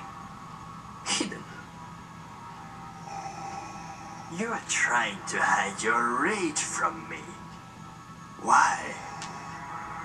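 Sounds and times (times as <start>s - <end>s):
drone of sustained tones: 0.0s - 10.0s
higher tones: 2.4s - 6.3s.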